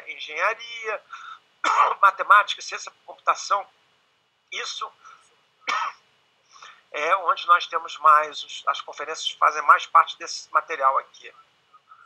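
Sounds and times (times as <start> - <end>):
man coughing: 1.6 - 2.0, 5.7 - 6.0.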